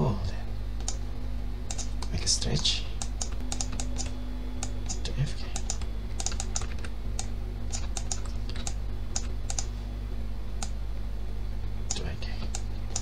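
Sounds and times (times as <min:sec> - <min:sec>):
low electrical hum: 0:00.0 - 0:13.0
keyboard and mouse clicks: 0:00.8 - 0:01.0, 0:01.7 - 0:09.7, 0:11.9 - 0:13.0.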